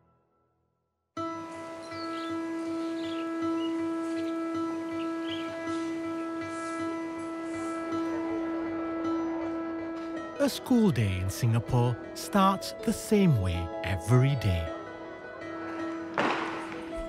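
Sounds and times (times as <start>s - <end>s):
sustained music drone chord: 1.2s - 15.6s.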